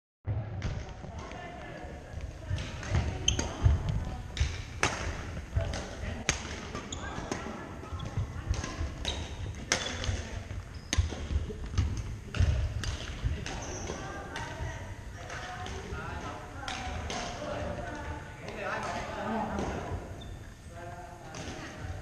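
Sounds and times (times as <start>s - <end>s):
racket hitting shuttlecock: 2.6s - 20.1s.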